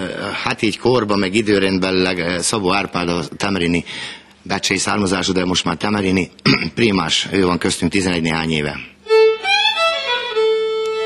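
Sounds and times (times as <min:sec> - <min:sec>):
solo violin: 0:09.0 - 0:11.0.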